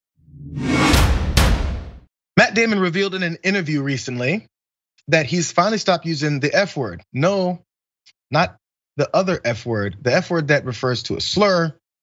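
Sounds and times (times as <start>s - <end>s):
whoosh: 0.3s - 2.0s
sharp hits: 0.3s - 2.1s.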